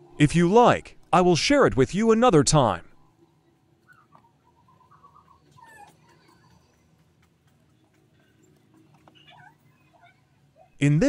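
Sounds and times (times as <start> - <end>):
faint squeaky chirps: 3.2 - 10.8.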